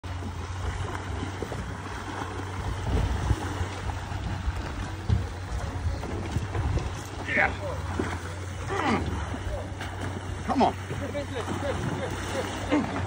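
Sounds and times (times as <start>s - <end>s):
sea water washing around hull: 0.0s - 13.0s
wind noise: 0.6s - 8.2s.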